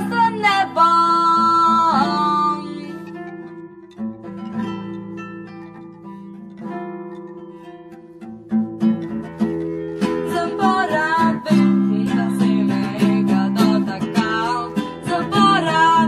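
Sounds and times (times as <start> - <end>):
acoustic guitars playing: 0.0 - 16.0.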